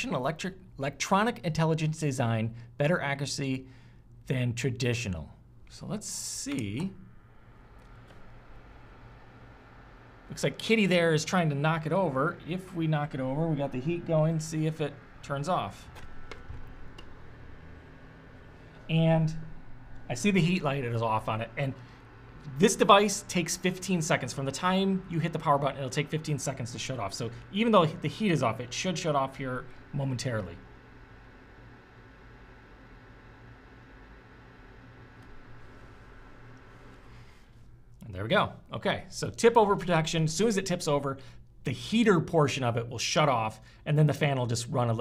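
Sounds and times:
heater fan humming: 0.0s - 45.0s.

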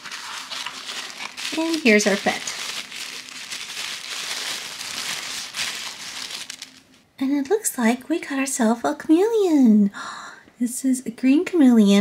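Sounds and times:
paper wrapping crinkling: 0.0s - 7.0s.

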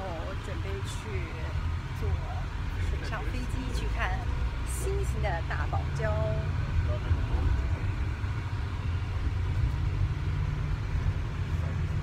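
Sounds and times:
woman talking: 0.0s - 7.9s
bus rumble from inside: 0.0s - 12.0s.

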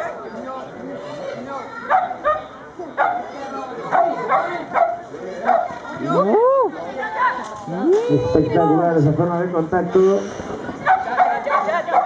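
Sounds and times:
dog barking: 1.9s - 3.3s, 3.9s - 5.8s, 10.8s - 12.0s.

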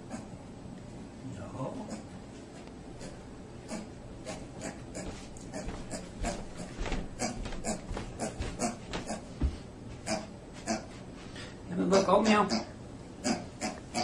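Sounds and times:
small animal snorting and sniffing: 0.0s - 0.4s, 1.8s - 2.2s, 3.0s - 9.4s, 10.0s - 11.0s, 12.2s - 14.0s.

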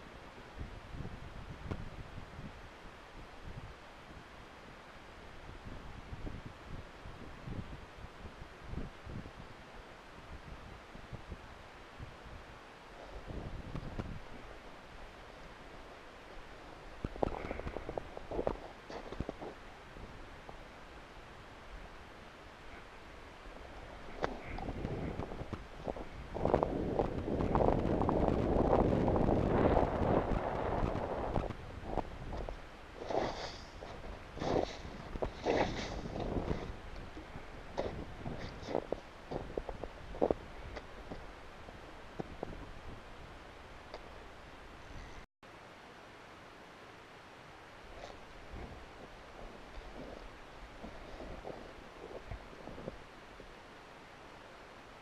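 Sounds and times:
wind buffeting microphone: 0.0s - 4.3s, 5.4s - 20.6s, 22.7s - 45.2s, 47.9s - 53.5s
boots crunching on snow: 32.4s - 36.8s.

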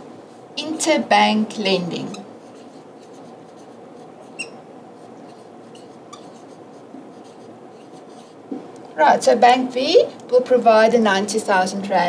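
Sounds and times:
pen writing on a surface: 2.4s - 8.4s.

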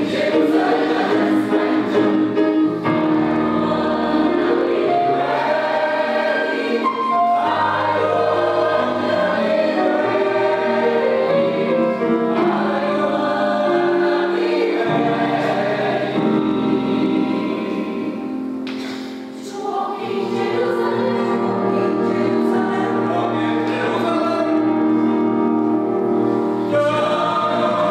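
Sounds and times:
mixed choir singing in parts: 0.0s - 27.9s.

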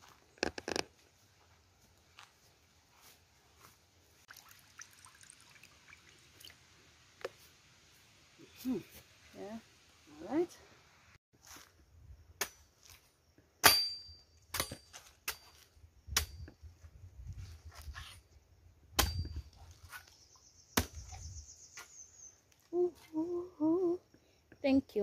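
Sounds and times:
machete chopping coconut husk: 13.6s - 15.6s, 19.0s - 19.4s, 20.8s - 21.1s.

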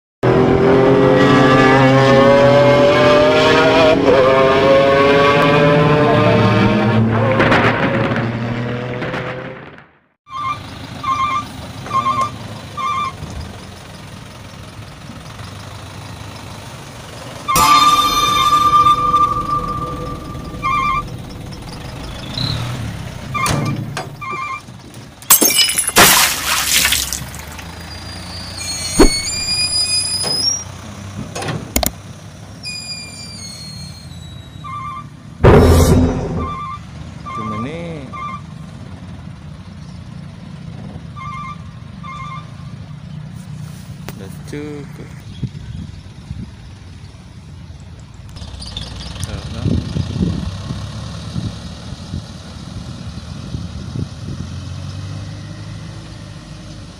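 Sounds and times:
truck engine rumble: 6.1s - 56.9s
reversing alarm beeping: 17.5s - 24.6s, 32.7s - 38.4s.

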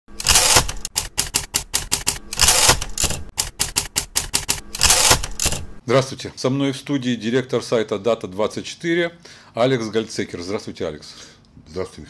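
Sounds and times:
typewriter rasping bursts: 0.1s - 5.8s
typewriter key strikes: 0.2s - 5.7s.

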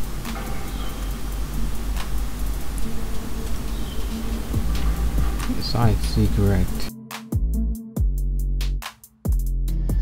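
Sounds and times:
electronic music with drum-machine beat: 0.0s - 10.0s.

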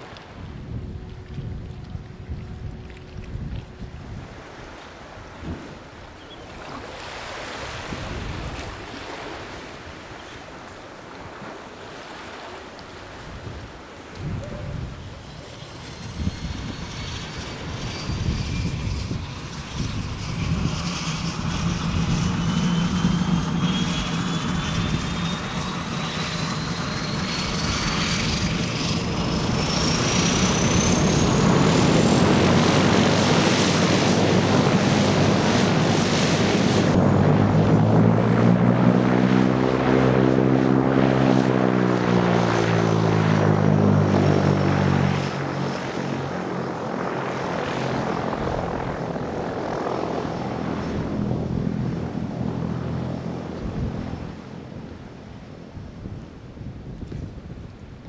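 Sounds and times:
floatplane engine and propeller: 0.0s - 58.0s
thin whine rising in pitch: 14.4s - 55.4s.

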